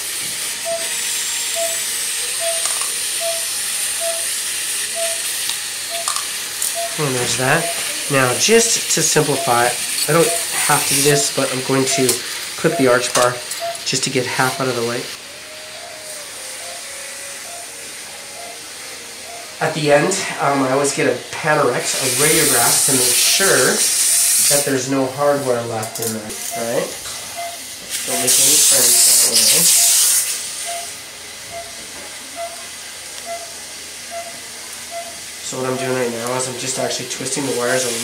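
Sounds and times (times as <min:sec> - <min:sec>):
dental suction hissing: 0:00.0 - 0:15.1, 0:21.6 - 0:31.8
pulse oximeter beeping: 0:00.6 - 0:14.9, 0:16.5 - 0:17.8, 0:25.8 - 0:36.1.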